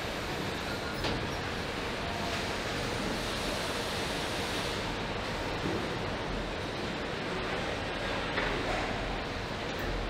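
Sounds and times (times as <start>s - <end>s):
machinery and ventilation din: 0.0s - 10.0s.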